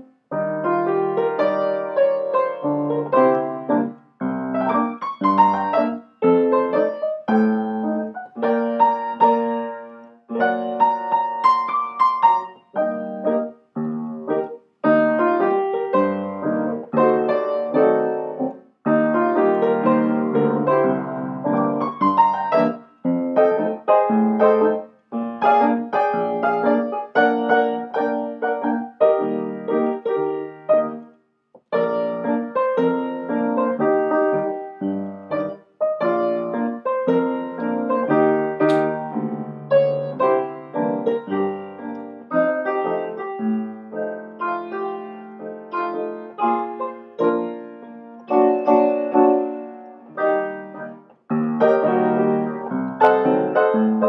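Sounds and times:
solo grand piano: 0:00.0 - 0:54.0.

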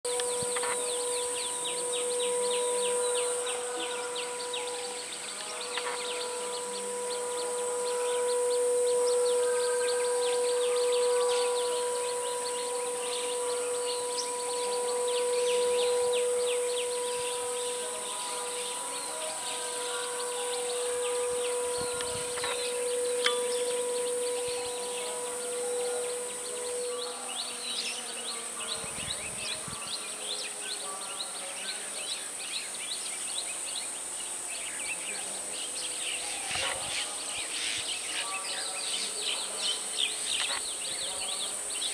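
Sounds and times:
high steady insect hiss: 0:00.1 - 0:41.9
steady hum: 0:00.1 - 0:41.9.

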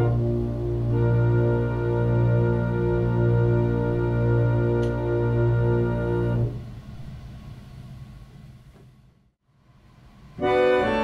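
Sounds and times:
reed organ chord: 0:00.0 - 0:06.6, 0:10.4 - 0:11.0
low room rumble: 0:00.0 - 0:11.0.

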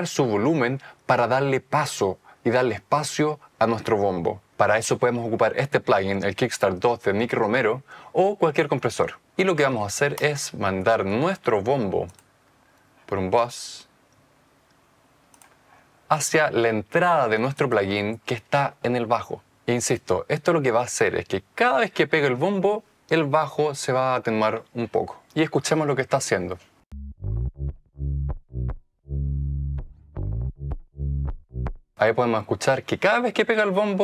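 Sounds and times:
faint quick clicks: 0:14.1 - 0:15.6
pumping bass line: 0:26.9 - 0:31.9.

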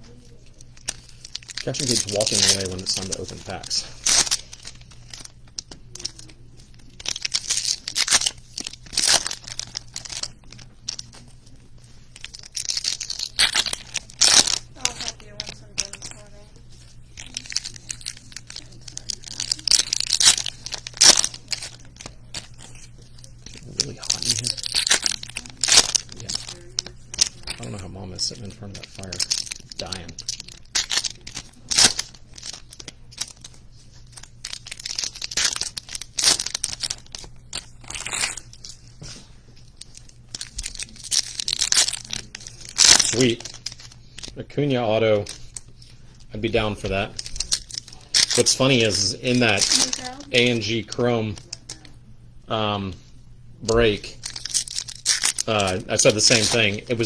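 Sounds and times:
foil wrappers crinkling: 0:00.0 - 0:51.9, 0:53.6 - 0:57.0.

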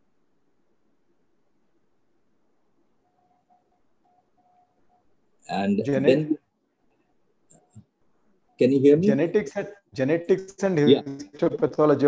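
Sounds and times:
faint thin tone: 0:03.0 - 0:06.4.

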